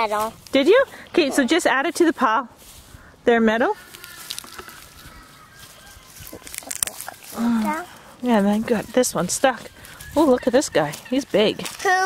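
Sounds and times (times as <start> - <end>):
garden plants rustling: 0.0 - 12.0.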